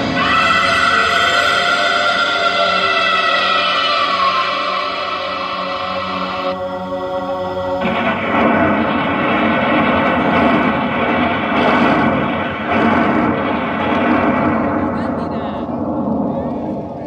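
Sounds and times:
distorted song from loudspeakers: 0.0 - 15.4.

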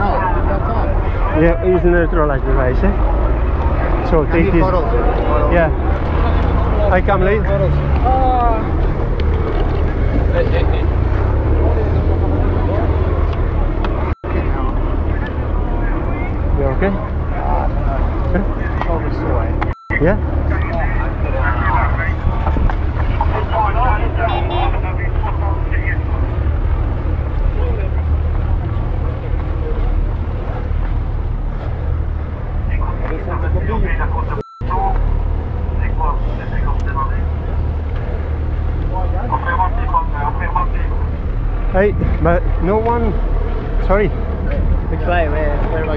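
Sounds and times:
indistinct voices: 0.0 - 45.9
steady low rumble: 0.0 - 45.9.

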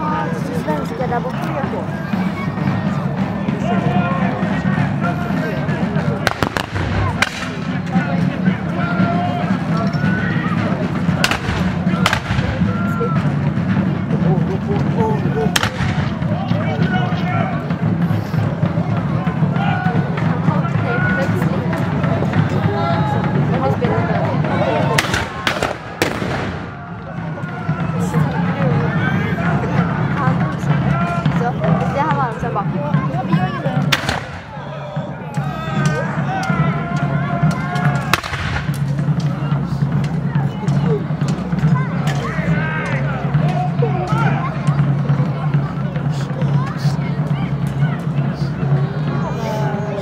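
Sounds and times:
onlookers chattering: 0.0 - 50.0
musket shots cracking: 6.3 - 7.6, 11.2 - 12.5, 25.0 - 26.7, 33.9 - 34.4, 38.1 - 38.8.

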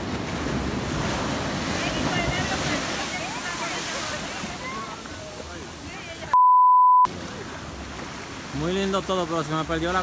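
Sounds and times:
surf washing at shore: 0.0 - 6.4, 7.1 - 10.0
censor bleep: 6.3 - 7.1.

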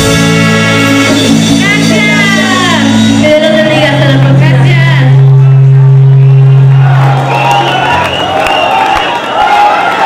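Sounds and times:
live band low note: 0.0 - 8.7
audience cheering and shouting: 4.7 - 10.0.

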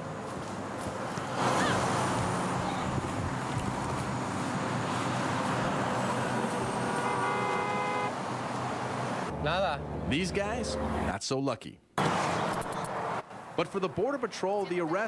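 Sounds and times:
road traffic: 0.0 - 11.2, 11.8 - 15.0
car horn: 6.8 - 8.2.

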